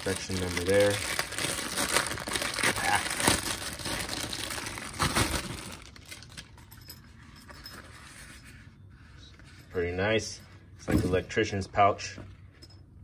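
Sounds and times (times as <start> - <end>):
plastic bag crinkling: 0.0 - 6.6.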